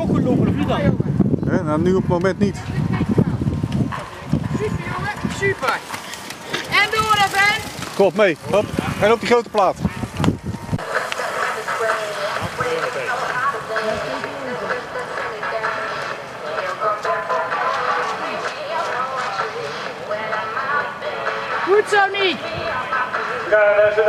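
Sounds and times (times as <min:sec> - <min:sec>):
music over loudspeaker: 0:10.8 - 0:24.0.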